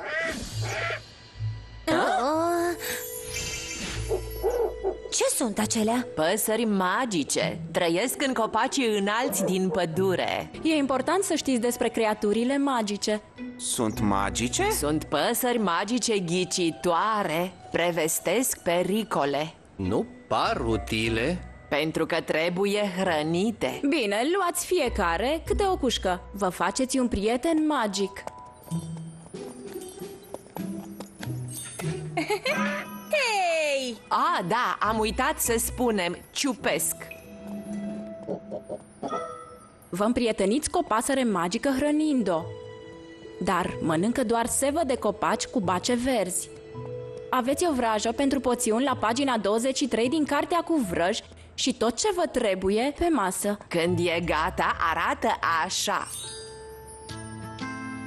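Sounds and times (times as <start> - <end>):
cartoon birds cooing: 0.0 - 1.0
soft background music: 0.2 - 58.0
cartoon pony hoofsteps: 28.2 - 31.8.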